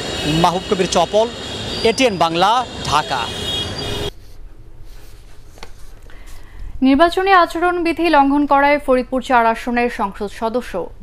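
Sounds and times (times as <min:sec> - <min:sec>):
traffic noise: 0:00.0 - 0:04.2
man speaking: 0:00.2 - 0:03.6.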